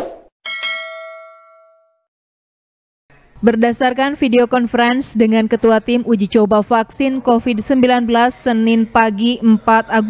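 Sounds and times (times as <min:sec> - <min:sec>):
bell-like notification ding: 0:00.5 - 0:02.1.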